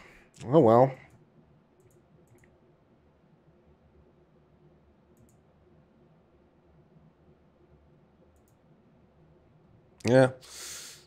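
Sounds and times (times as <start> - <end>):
computer mouse clicks: 1.8 - 2.6, 5.1 - 5.4, 8.3 - 8.6.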